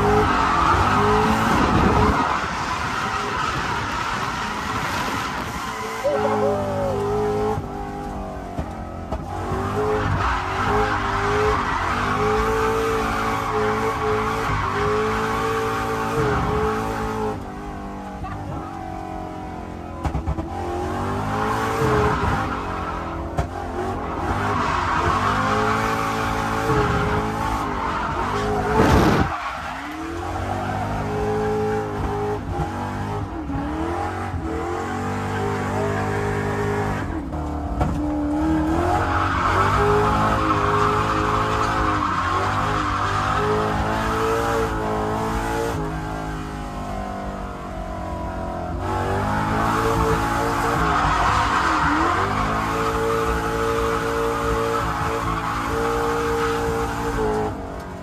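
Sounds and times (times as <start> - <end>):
tyres squealing and skidding: 0.0 - 8.0, 9.3 - 17.1, 21.2 - 32.6, 33.3 - 37.4, 38.0 - 45.2, 49.1 - 57.6
car engine revving: 0.0 - 58.0.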